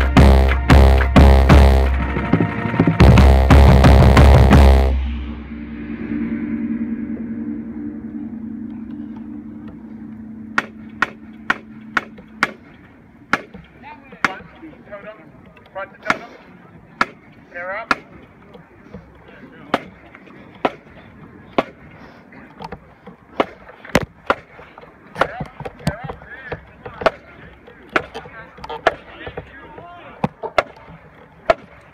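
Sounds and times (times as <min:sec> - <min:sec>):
marching bass drums: 0:00.0 - 0:06.3, 0:08.5 - 0:14.6
low ringing tone: 0:04.2 - 0:13.3
faint voices: 0:06.8 - 0:31.9.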